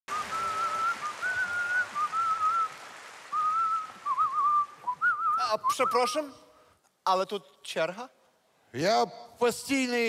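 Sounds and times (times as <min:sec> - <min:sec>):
man whistling a tune: 0:00.1 - 0:06.4.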